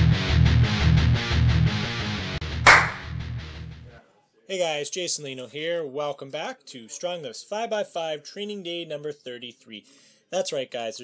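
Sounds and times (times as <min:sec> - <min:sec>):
guitar-driven intro music: 0:00.0 - 0:03.8
sharp crack: 0:02.7 - 0:03.2.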